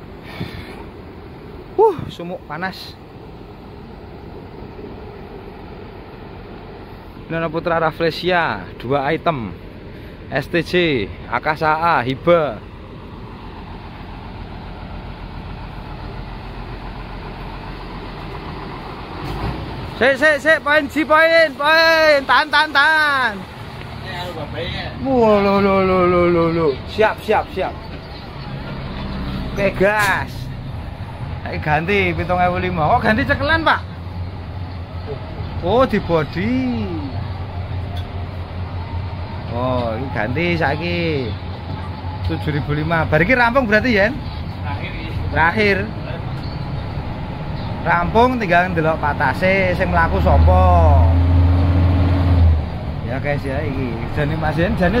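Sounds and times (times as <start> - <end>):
bus diesel engine rumbling: 0.0 - 55.0.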